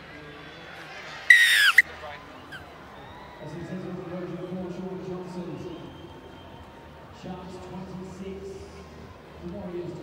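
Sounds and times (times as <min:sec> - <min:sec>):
faint crowd: 0:00.0 - 0:10.0
referee's whistle blast: 0:01.3 - 0:01.8
short whistle pip: 0:01.3 - 0:01.8.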